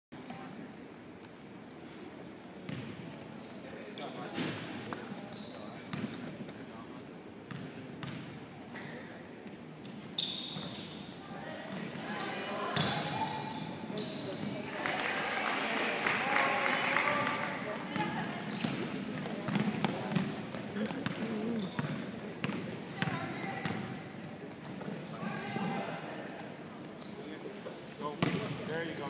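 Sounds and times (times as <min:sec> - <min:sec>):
shoe squeaks: 0:00.3 - 0:02.9, 0:05.3 - 0:05.8, 0:09.8 - 0:11.2, 0:12.2 - 0:14.6, 0:18.5 - 0:22.3, 0:24.8 - 0:29.0.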